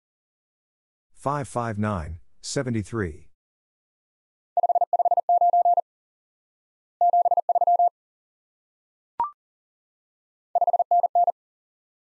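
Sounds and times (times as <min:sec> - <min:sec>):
morse code beeps: 0:04.6 - 0:05.8, 0:07.0 - 0:07.9, 0:10.6 - 0:11.4.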